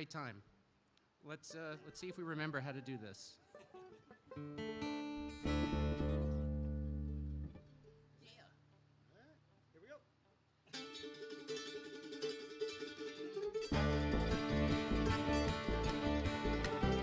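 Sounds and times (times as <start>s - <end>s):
bluegrass string band: 3.3s - 8.2s, 10.7s - 17.0s.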